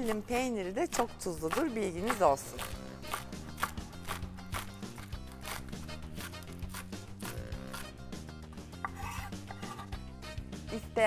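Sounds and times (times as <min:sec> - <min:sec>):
knife chopping on wooden board: 0:00.0 - 0:07.9, 0:08.8 - 0:09.9
background music: 0:00.0 - 0:11.0.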